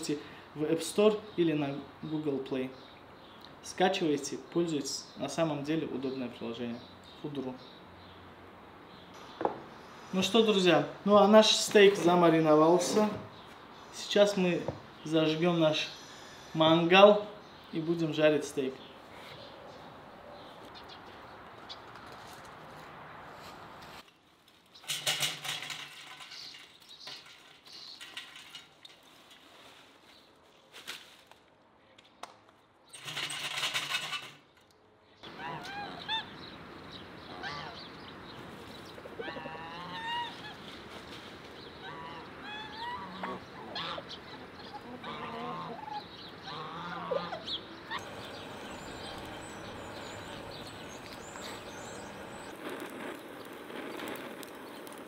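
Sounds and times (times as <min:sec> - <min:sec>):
charcoal poured into metal grill: 0:24.8 - 0:30.0
poultry calling: 0:35.2 - 0:36.6, 0:37.2 - 0:38.0, 0:39.0 - 0:40.8, 0:41.6 - 0:52.5
gas torch flame hissing: 0:48.0 - 0:55.0.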